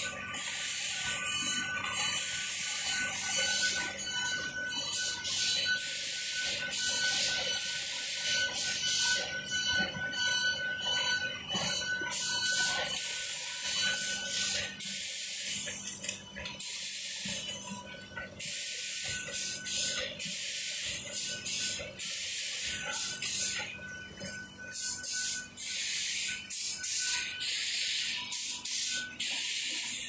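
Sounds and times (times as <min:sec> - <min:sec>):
machine high whine: 0:00.0 - 0:30.0.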